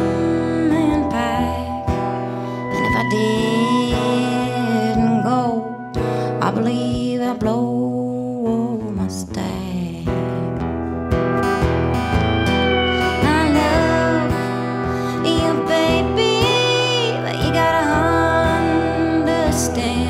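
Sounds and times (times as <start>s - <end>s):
pedal steel guitar gliding notes: 0.0s - 20.0s
strummed acoustic guitar: 0.0s - 20.0s.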